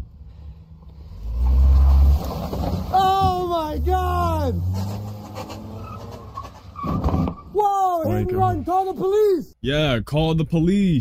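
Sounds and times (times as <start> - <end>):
car engine and tyres pulling away: 0.0 - 7.5.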